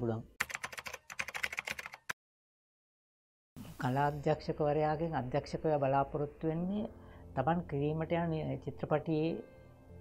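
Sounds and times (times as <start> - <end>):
computer keyboard typing: 0.4 - 2.2.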